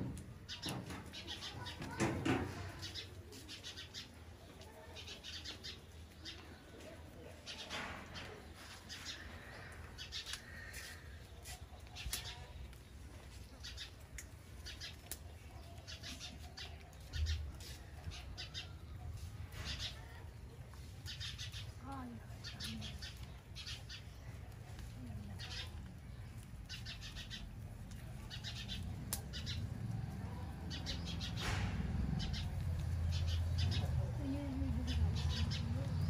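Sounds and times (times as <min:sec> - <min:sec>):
rabbits munching stems: 0:00.1 - 0:36.0.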